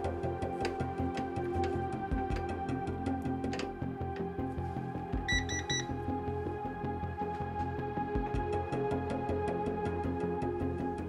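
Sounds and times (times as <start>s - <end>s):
music with low pulsing beat: 0.0s - 11.0s
high electronic beeps: 5.3s - 5.9s.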